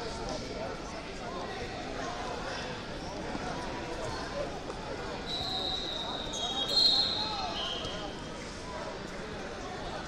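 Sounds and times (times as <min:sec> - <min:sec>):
background chatter: 0:00.0 - 0:10.0
shrill whistles blowing: 0:05.3 - 0:07.9.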